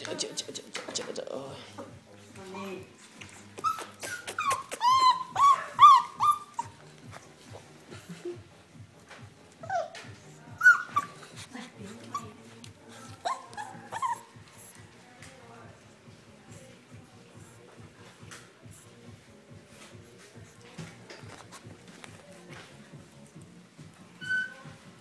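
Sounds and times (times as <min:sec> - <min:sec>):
puppy whimpering: 0:03.3 - 0:06.9, 0:09.6 - 0:14.8, 0:24.1 - 0:24.8.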